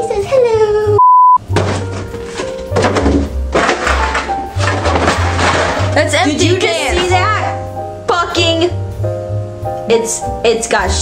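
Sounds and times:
high test-tone beep: 1.0s - 1.4s
cardboard case knocking on counter: 1.5s - 6.0s.

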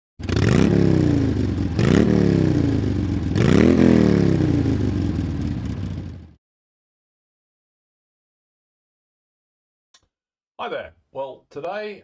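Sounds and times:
engine revving: 0.2s - 6.3s.

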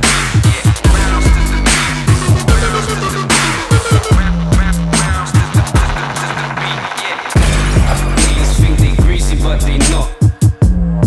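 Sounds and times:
dubstep with deep bass and drums: 0.0s - 11.0s.

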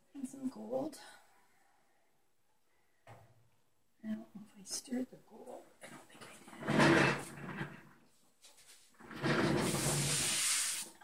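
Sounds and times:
stir stick scraping paint cups: 8.6s - 11.0s.

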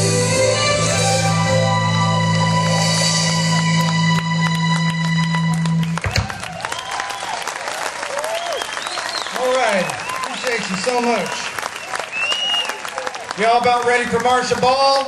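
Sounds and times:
crowd applauding and cheering: 1.4s - 15.0s.

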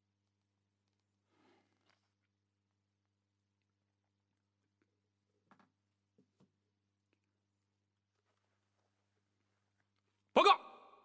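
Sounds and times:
man calling out: 10.4s - 11.0s.

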